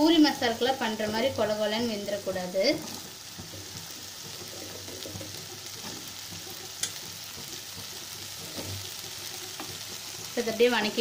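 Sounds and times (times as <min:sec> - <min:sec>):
potatoes sizzling in oil: 0:00.0 - 0:11.0
wooden spatula scraping pan: 0:02.6 - 0:11.0.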